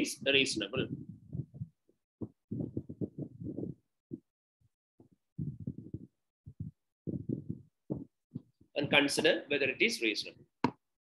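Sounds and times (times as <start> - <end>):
muffled man's voice: 0.0 - 1.0, 8.8 - 10.4.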